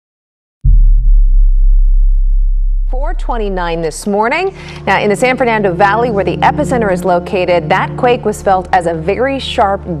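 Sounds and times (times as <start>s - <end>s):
deep bass drone: 0.6s - 10.0s.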